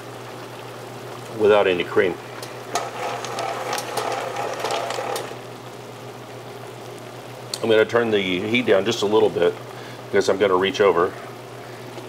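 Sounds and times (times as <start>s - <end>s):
sauce sizzling: 0.0s - 12.0s
clam shells rattling in a metal pan: 2.7s - 5.4s.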